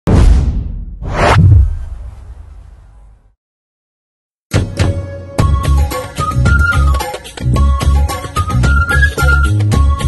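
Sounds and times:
deep boom: 0:00.1 - 0:03.2
whoosh: 0:00.1 - 0:03.2.

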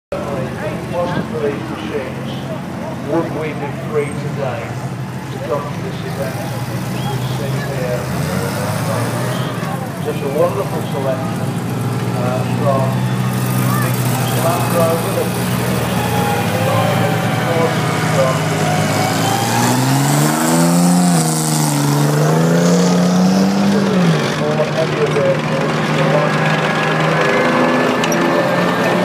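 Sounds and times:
military vehicle engines droning: 0:00.1 - 0:29.0
vehicle engine passing close: 0:00.1 - 0:29.0.

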